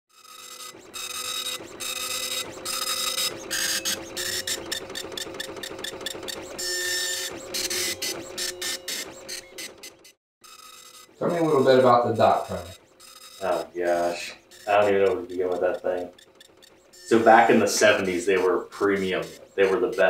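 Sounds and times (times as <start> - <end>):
dot matrix printer printing: 0.1 - 20.0.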